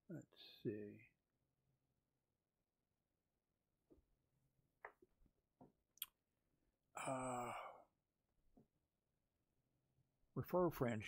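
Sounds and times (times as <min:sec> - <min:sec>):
man sighing uh: 0:07.0 - 0:07.9.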